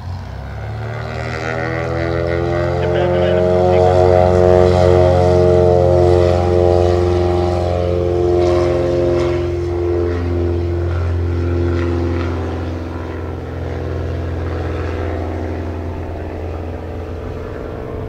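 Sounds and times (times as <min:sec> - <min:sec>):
propeller aircraft taking off: 0:00.0 - 0:18.0.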